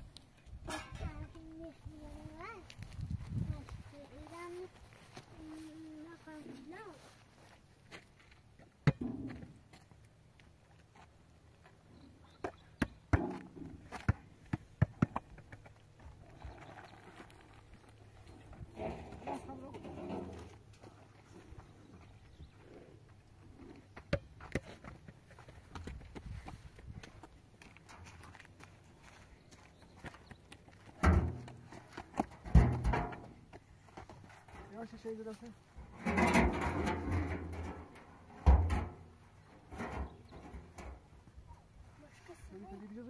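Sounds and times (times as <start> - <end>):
sharp knocks and clatters: 31.0 - 33.4, 35.9 - 41.0.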